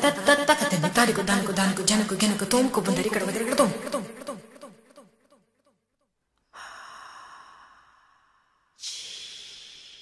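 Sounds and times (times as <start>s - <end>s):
breath-like hissing: 6.5s - 10.0s.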